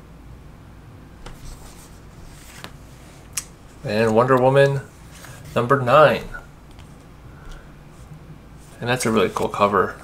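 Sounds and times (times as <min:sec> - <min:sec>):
paper comic book rustling: 0:01.2 - 0:07.6, 0:08.7 - 0:09.8.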